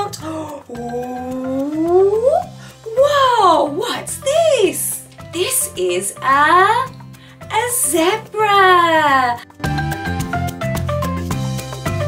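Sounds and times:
light background music: 0.0 - 12.0
woman's voice rising ooh: 0.5 - 3.2.

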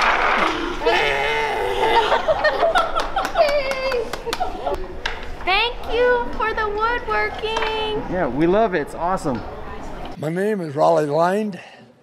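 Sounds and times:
hubbub of busy room: 0.4 - 12.0.

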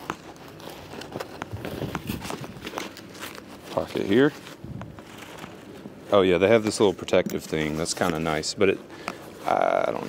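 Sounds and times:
fabric rustling: 0.0 - 8.5.

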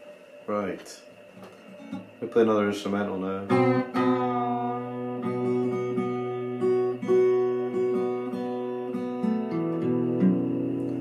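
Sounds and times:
fingerpicked acoustic guitar: 0.8 - 11.0.

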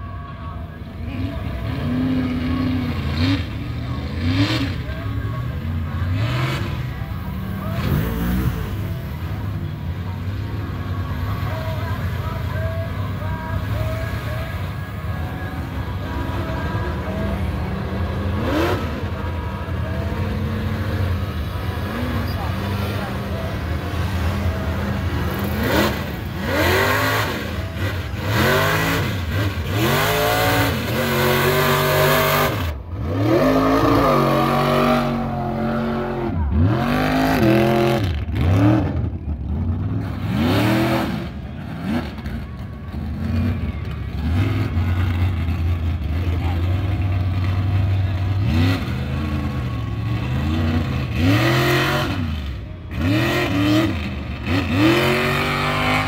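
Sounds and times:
truck engine revving hard: 1.0 - 9.6, 13.8 - 56.0.

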